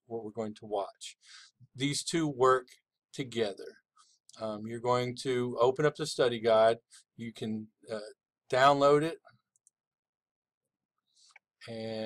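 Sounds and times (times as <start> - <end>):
man speaking: 0.1 - 1.2, 1.8 - 2.6, 3.2 - 3.7, 4.4 - 9.2, 11.7 - 12.0.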